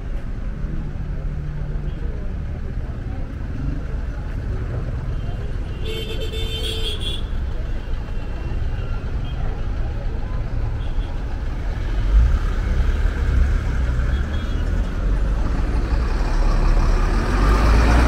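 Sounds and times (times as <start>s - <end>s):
street traffic: 0.0s - 18.0s
truck diesel engine rumbling: 0.0s - 18.0s.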